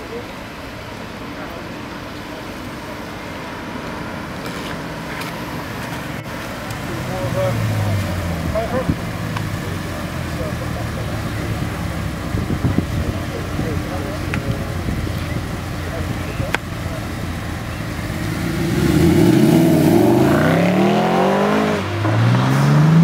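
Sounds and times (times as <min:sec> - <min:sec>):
people talking: 0:00.0 - 0:03.7, 0:04.5 - 0:22.7
car engine idling: 0:00.0 - 0:22.2.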